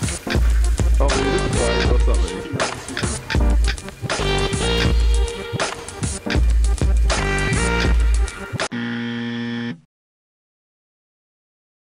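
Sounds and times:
bass-heavy background music: 0:00.0 - 0:08.8
low buzzer tone: 0:08.7 - 0:09.9.

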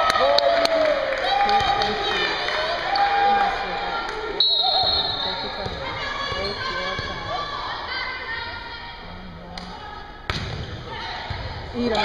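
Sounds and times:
crowd chatter: 0:00.7 - 0:12.0
referee's whistle: 0:04.4 - 0:05.8
ball bouncing on gym floor: 0:05.6 - 0:07.2, 0:10.3 - 0:12.0.

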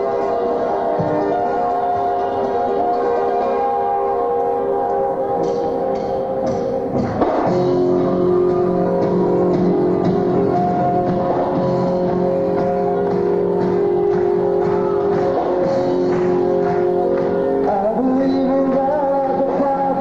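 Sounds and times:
live band playing: 0:00.0 - 0:20.0.

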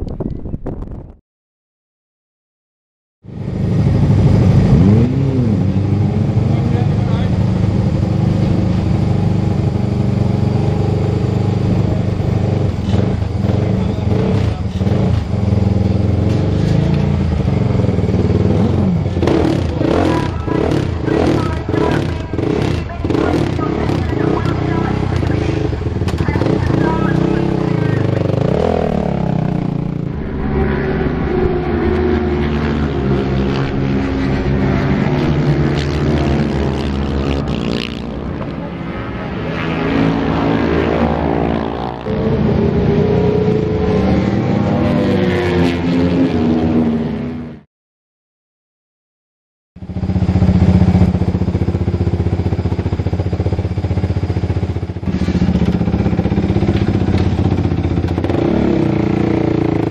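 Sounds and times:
motorcycle engine revving: 0:03.2 - 0:47.6, 0:49.8 - 0:59.9.

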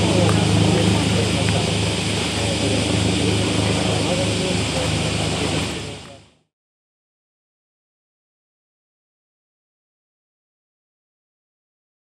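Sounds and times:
vehicle engines humming: 0:00.0 - 0:06.4
voices murmuring: 0:00.0 - 0:06.4.

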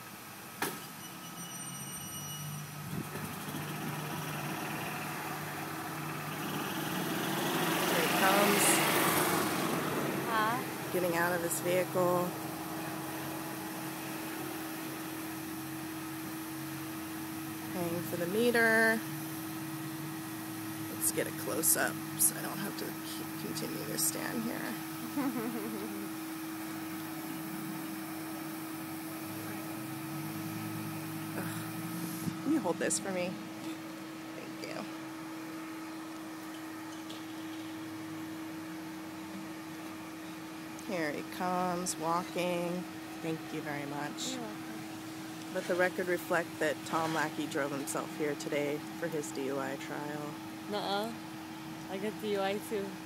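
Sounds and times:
steady mechanical hum: 0:00.0 - 0:53.0.

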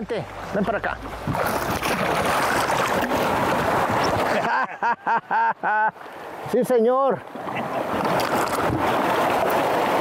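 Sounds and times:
rushing wind and water: 0:00.0 - 0:10.0
man laughing: 0:04.3 - 0:06.0.

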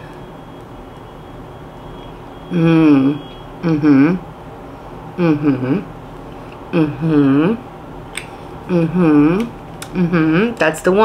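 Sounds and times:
faint high whine: 0:00.0 - 0:05.9
background hum and hiss: 0:00.0 - 0:11.0.

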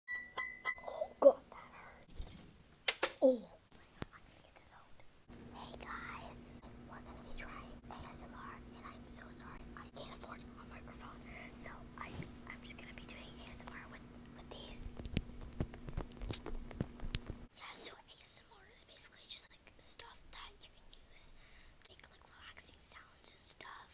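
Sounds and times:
girl whispering: 0:00.8 - 0:02.1, 0:03.2 - 0:14.8, 0:17.5 - 0:23.9
steady low hum: 0:03.5 - 0:18.1.

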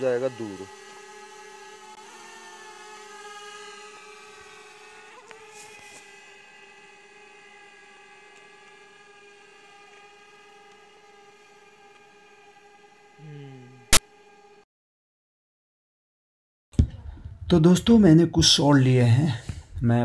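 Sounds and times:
drone propellers whining: 0:00.0 - 0:14.6.

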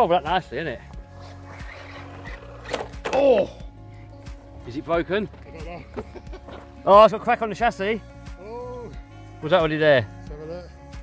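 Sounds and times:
rc car crashing: 0:01.5 - 0:03.4.

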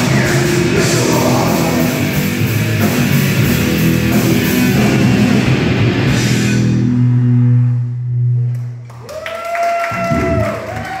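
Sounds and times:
rock band playing: 0:00.0 - 0:08.8
electric guitars and bass note: 0:00.0 - 0:09.0
applause: 0:08.6 - 0:11.0.

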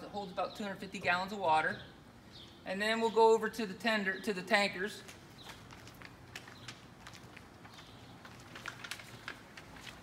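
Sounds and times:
footsteps on pavement: 0:05.0 - 0:10.0.

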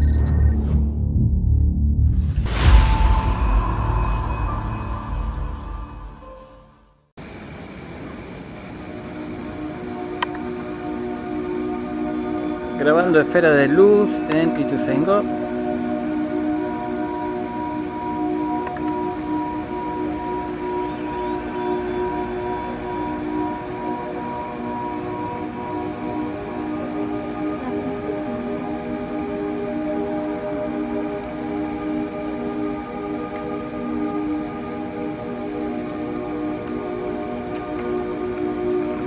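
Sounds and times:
ambient music with held chords: 0:00.0 - 0:39.0
steady background hiss: 0:07.2 - 0:39.0.

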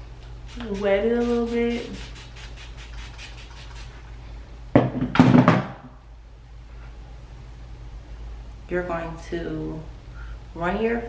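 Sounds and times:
spray bottle spraying: 0:00.4 - 0:04.1.

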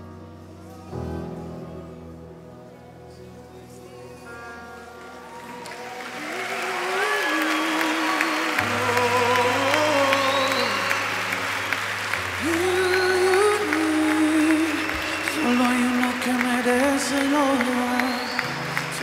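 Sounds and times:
crowd noise: 0:00.0 - 0:19.0
live worship band music: 0:00.0 - 0:19.0
voices singing slow melody: 0:00.0 - 0:19.0.

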